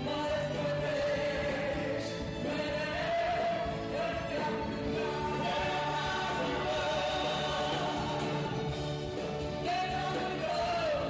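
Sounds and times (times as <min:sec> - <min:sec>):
woman and man singing: 0:00.0 - 0:08.8, 0:09.6 - 0:11.0
band playing: 0:00.0 - 0:11.0.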